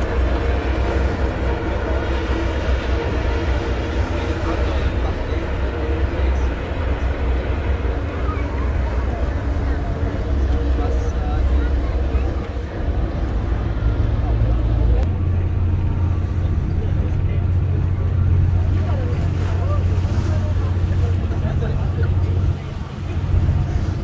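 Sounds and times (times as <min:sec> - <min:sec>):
boat engine droning: 0:00.0 - 0:24.0
faint voices: 0:00.0 - 0:24.0
water noise: 0:00.0 - 0:24.0
wind: 0:00.0 - 0:24.0.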